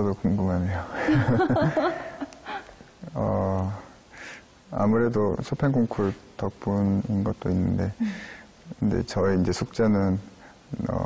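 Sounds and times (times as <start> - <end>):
man speaking: 3.0 - 3.9, 4.7 - 8.1
man breathing: 4.1 - 4.5, 8.0 - 8.6.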